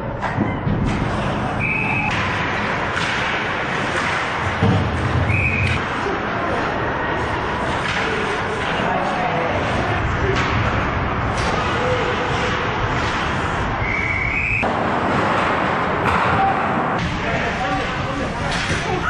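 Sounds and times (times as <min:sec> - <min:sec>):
ice skating and play: 0:00.0 - 0:19.0
thud: 0:02.0 - 0:05.8
indistinct voices: 0:03.8 - 0:14.6.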